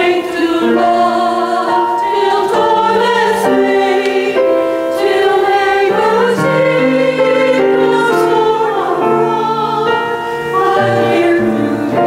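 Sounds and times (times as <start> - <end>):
church choir singing: 0.0 - 12.0
instrumental accompaniment: 0.0 - 12.0.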